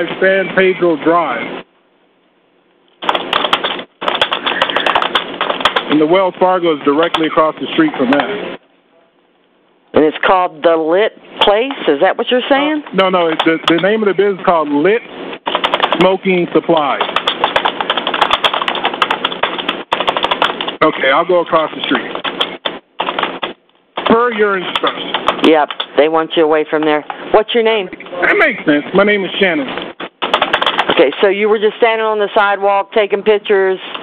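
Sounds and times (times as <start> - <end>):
rapid irregular clicking: 2.9 - 8.3, 12.8 - 14.8, 15.4 - 26.0, 29.7 - 31.2
keyboard typing over telephone: 3.0 - 6.1, 6.9 - 8.3, 12.8 - 14.0, 15.4 - 26.0, 30.0 - 31.2.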